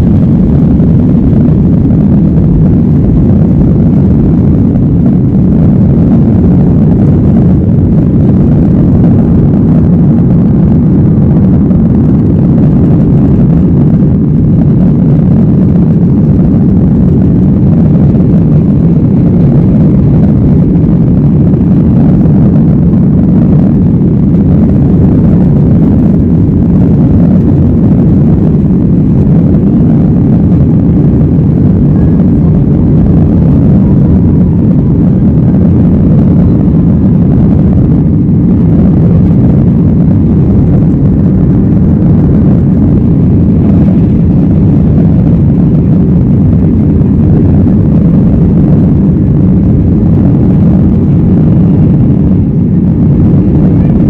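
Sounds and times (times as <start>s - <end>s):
jet engines rumbling in cabin: 0.0s - 54.0s.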